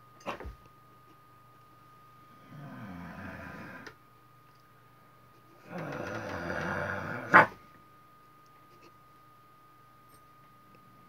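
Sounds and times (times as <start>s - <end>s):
dog growling: 2.4s - 4.0s, 5.6s - 7.6s
dog barking: 7.3s - 7.6s.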